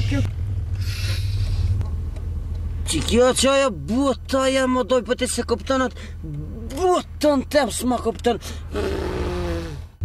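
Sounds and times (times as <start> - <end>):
car engine running inside cabin: 0.0 - 10.0.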